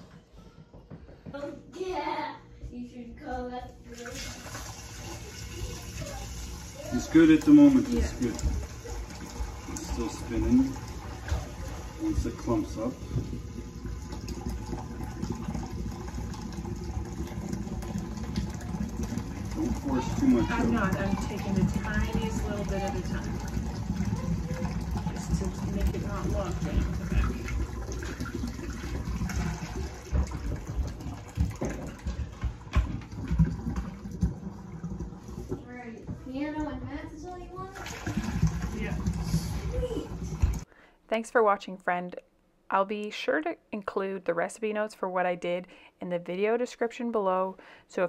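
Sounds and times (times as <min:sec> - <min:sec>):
liquid pouring into glass jug: 0:03.9 - 0:35.7, 0:37.6 - 0:40.7.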